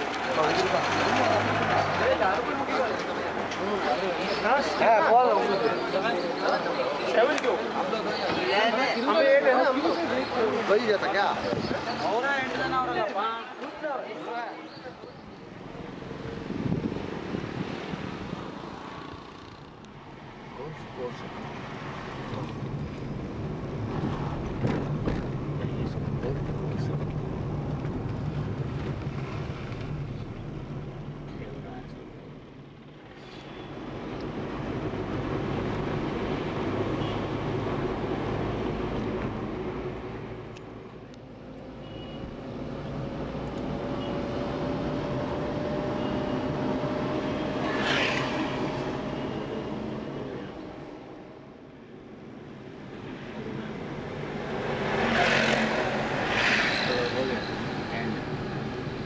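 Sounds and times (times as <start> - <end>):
vehicle engine and road noise: 0.0 - 59.0.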